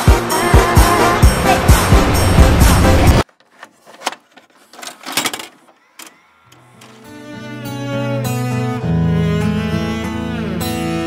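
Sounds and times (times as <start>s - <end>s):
music: 0.0s - 3.2s, 6.6s - 11.0s
clicks and clattering: 3.3s - 7.0s.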